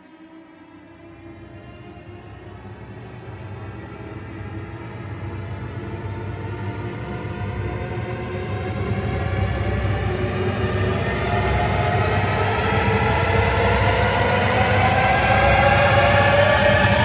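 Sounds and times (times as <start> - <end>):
orchestral horror score chord: 0.1 - 17.0.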